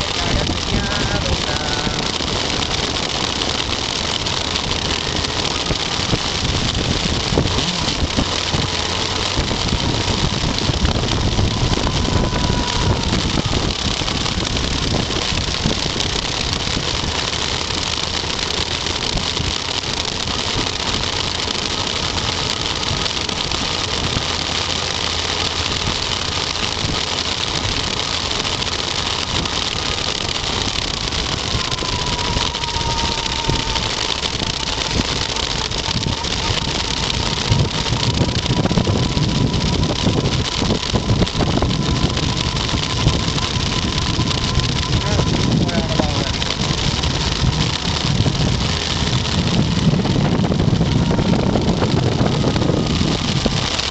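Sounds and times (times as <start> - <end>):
motorcycle engine running: 0.0 - 53.9
thin engine whine: 0.0 - 53.9
wind and road noise: 0.0 - 53.9.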